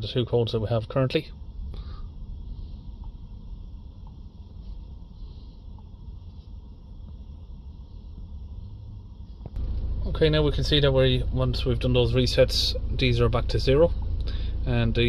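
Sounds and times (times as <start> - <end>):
diesel engine idling: 0.6 - 15.0.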